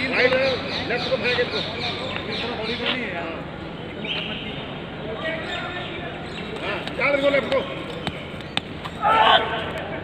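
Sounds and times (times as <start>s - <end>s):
loud shout: 9.0s - 9.8s.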